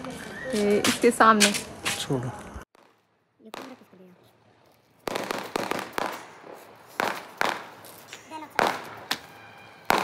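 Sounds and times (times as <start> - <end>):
firecrackers cracking: 2.7 - 4.3, 4.9 - 10.0.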